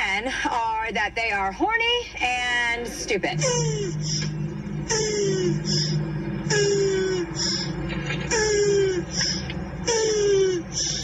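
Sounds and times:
steady low hum: 0:00.0 - 0:11.0
voice-like wailing cry: 0:03.3 - 0:09.2, 0:09.9 - 0:10.9.

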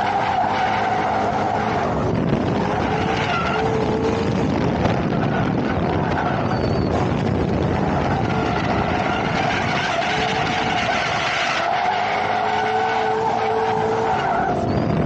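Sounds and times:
car engine at high revs: 0:00.0 - 0:15.0
tyres skidding on asphalt: 0:00.0 - 0:15.0.

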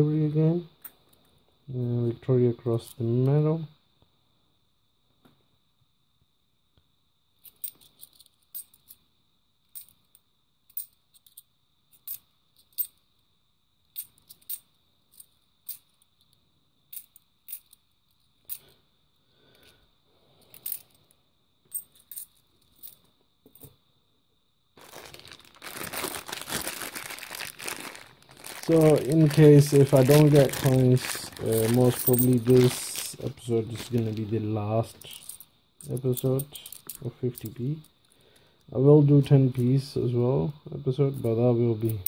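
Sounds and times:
plastic bag crinkling: 0:24.8 - 0:35.3
coins clinking together: 0:28.7 - 0:33.2.

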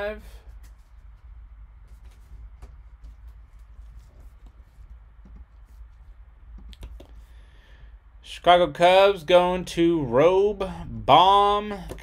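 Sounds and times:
low steady hum: 0:00.0 - 0:12.0
faint clicks and taps: 0:01.9 - 0:07.2.

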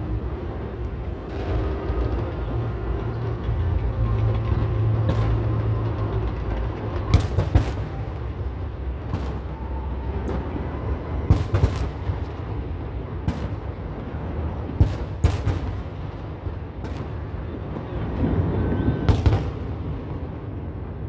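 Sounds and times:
rumble of distant fireworks: 0:00.0 - 0:21.0
firework cracks: 0:13.2 - 0:18.4, 0:19.0 - 0:20.0
sharp firework bangs: 0:19.1 - 0:19.7.

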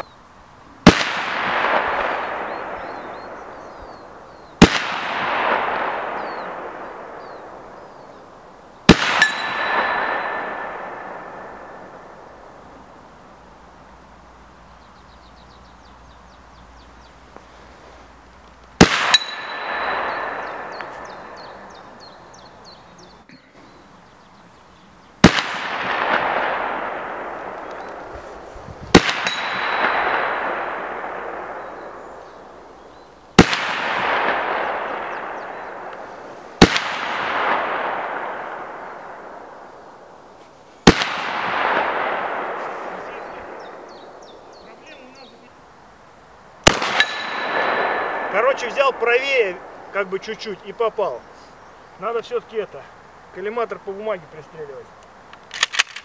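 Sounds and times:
shotgun shots with echo: 0:00.8 - 0:03.7, 0:04.6 - 0:07.6, 0:08.9 - 0:12.3, 0:18.8 - 0:22.2, 0:25.2 - 0:28.1, 0:28.9 - 0:32.6, 0:33.4 - 0:39.6, 0:40.8 - 0:44.2, 0:46.6 - 0:49.9.

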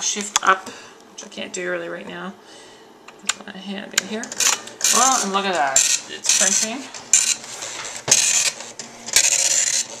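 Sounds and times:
dot-matrix printer head buzzing: 0:04.2 - 0:10.0.

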